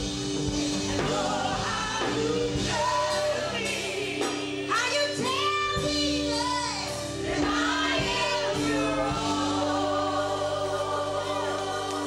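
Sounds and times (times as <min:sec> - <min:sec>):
instrumental accompaniment: 0:00.0 - 0:12.0
backing vocalists singing: 0:00.7 - 0:04.8, 0:07.2 - 0:12.0
woman singing lead: 0:00.7 - 0:12.0.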